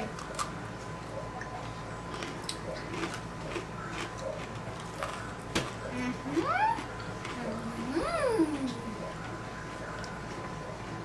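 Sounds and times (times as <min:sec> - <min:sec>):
cookies crunching when bitten: 0:00.0 - 0:00.6, 0:01.4 - 0:07.9.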